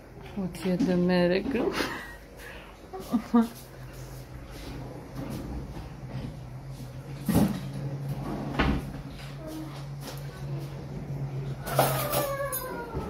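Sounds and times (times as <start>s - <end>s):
steady low hum: 0.0s - 13.0s
cupboard doors shutting: 7.2s - 9.1s.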